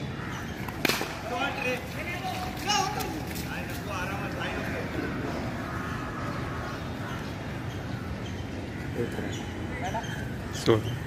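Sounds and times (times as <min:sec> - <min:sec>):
cricket bat hitting ball: 0:00.6 - 0:01.3.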